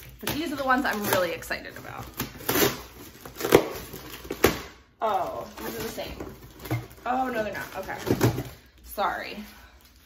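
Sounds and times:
plastic packaging being torn: 0.0 - 8.2
sharp plastic crackles: 0.0 - 10.0.

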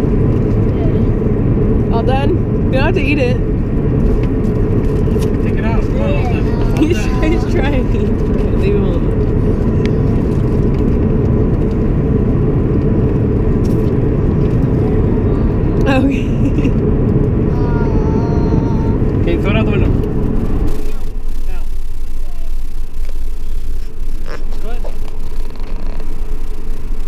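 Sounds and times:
car cabin road noise: 0.0 - 27.0
faint voices: 5.4 - 10.5, 17.5 - 20.0.

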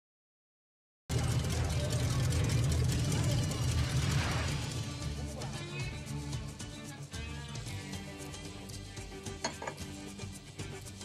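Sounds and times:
vehicle engines rumbling: 1.1 - 5.7
voices: 1.1 - 7.0.

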